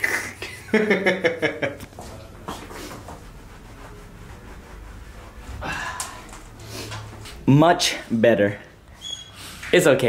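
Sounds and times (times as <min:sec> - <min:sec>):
cloth wiping floor: 0:00.6 - 0:08.2
faint shuffling: 0:01.7 - 0:10.0.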